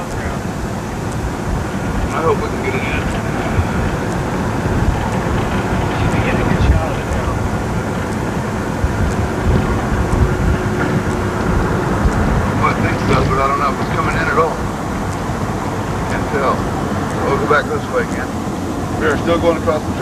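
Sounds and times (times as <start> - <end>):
wind noise: 0.0 - 20.0.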